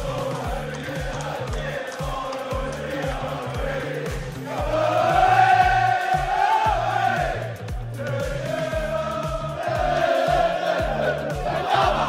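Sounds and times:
crowd singing in unison: 0:00.0 - 0:12.0
kick drum beat: 0:00.0 - 0:12.0.

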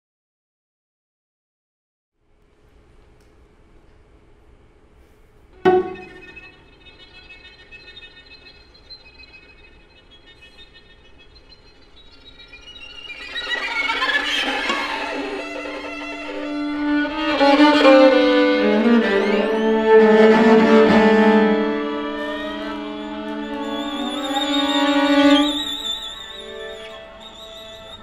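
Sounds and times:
string quartet playing: 0:05.6 - 0:06.6, 0:13.2 - 0:28.0.

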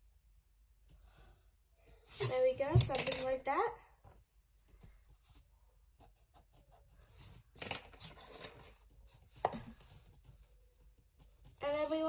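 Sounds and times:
pencil scratching on paper: 0:05.1 - 0:12.0.

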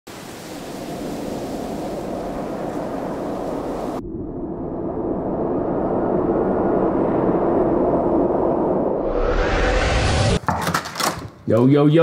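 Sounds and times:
rushing wind: 0:00.1 - 0:10.4.

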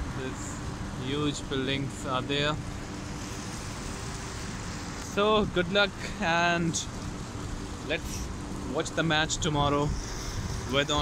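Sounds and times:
road traffic rush: 0:00.0 - 0:11.0.

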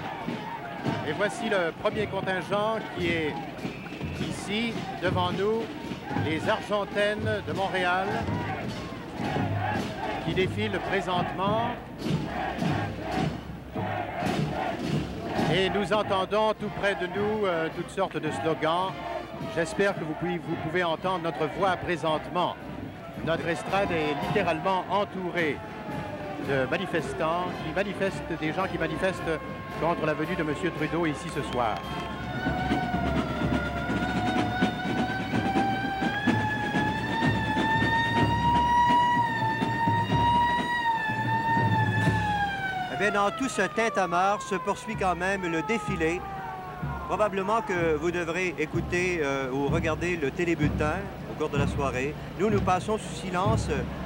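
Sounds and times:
crowd chanting slogans: 0:00.0 - 0:27.6
siren wailing: 0:23.2 - 0:50.0.

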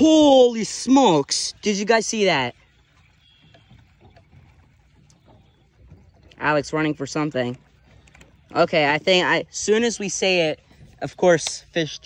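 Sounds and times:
water lapping against boat hull: 0:00.0 - 0:12.0.

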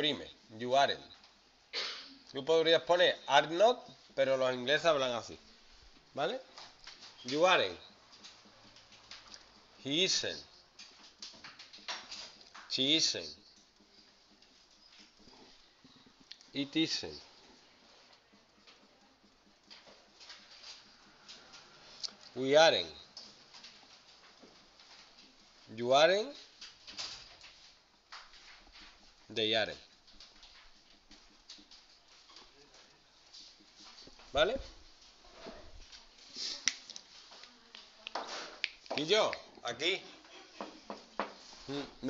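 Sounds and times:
marker squeaking on whiteboard: 0:13.3 - 0:22.3.

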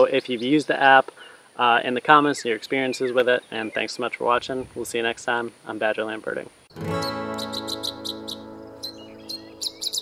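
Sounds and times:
birds chirping: 0:00.0 - 0:04.4, 0:06.7 - 0:10.0
acoustic guitar chord ringing: 0:06.7 - 0:10.0.

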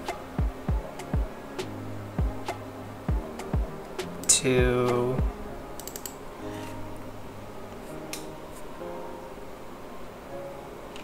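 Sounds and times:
soft background music: 0:00.0 - 0:11.0
computer keyboard keystrokes: 0:05.8 - 0:06.2.

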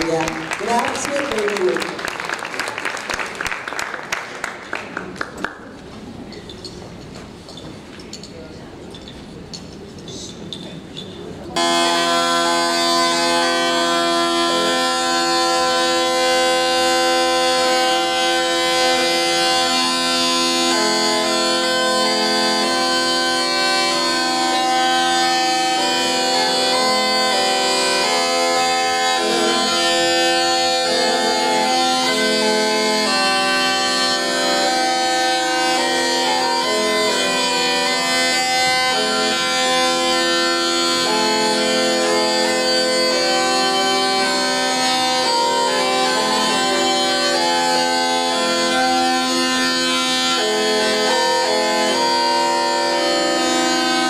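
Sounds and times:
bagpipe melody over drones: 0:11.6 - 0:54.0.

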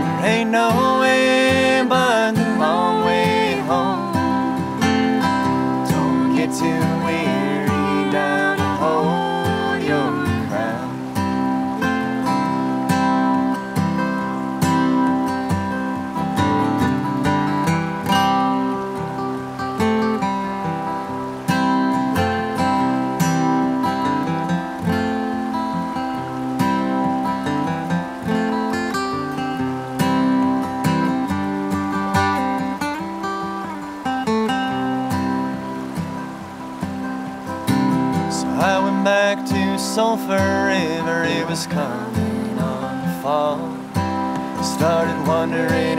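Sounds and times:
acoustic guitar picking and strumming: 0:00.0 - 0:45.9.

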